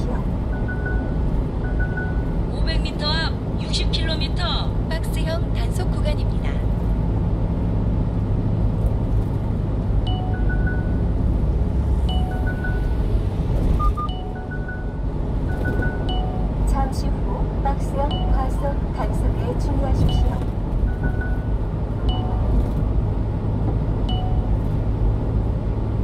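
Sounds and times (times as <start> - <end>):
truck engine and tyres droning: 0.0 - 26.0
short electronic beeps: 0.5 - 2.4, 10.0 - 11.1, 12.0 - 16.6, 18.0 - 18.8, 19.8 - 22.8, 24.1 - 24.6.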